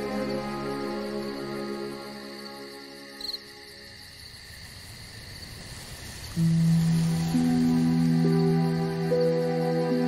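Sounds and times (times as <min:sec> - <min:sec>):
crickets chirping: 0:00.0 - 0:10.0
soft ambient music chords: 0:06.2 - 0:10.0
low sustained music chord: 0:06.4 - 0:10.0.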